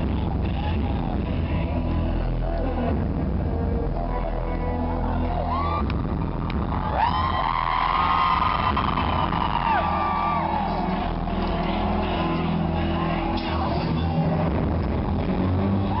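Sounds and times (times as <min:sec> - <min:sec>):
crowd cheering: 0:04.0 - 0:16.0.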